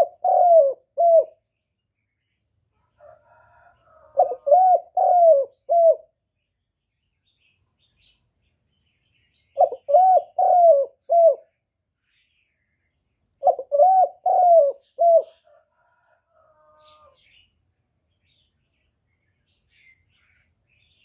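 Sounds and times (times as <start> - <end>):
dove cooing: 0.0 - 1.4, 3.0 - 6.1, 9.5 - 11.6, 13.4 - 17.2.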